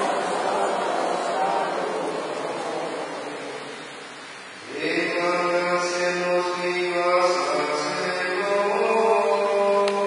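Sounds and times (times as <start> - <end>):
chanted singing: 0.0 - 3.9.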